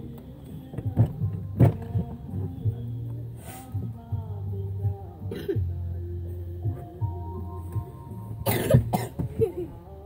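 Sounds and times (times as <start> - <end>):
person coughing: 5.3 - 5.6, 8.4 - 9.6.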